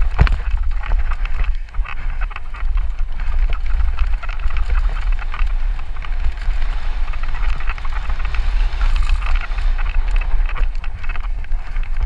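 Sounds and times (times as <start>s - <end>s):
bike frame rattling and clicking: 0.0s - 12.0s
bike tyres rolling over dirt and rock: 0.0s - 12.0s
wind buffeting microphone: 0.0s - 12.0s.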